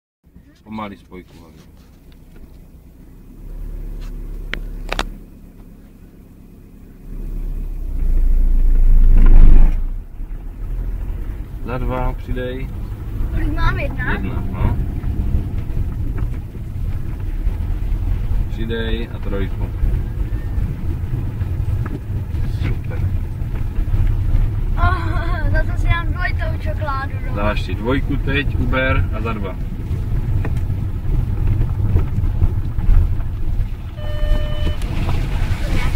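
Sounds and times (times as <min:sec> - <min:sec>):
road noise: 0:00.2 - 0:35.9
car engine pulling away: 0:00.3 - 0:35.9.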